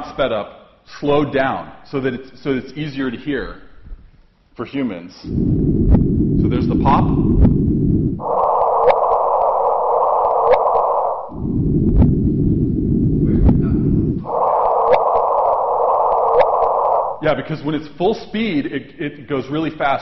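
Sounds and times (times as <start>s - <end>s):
low detector noise: 5.3s - 17.3s
short rising whoop: 8.2s - 11.6s, 14.2s - 17.2s.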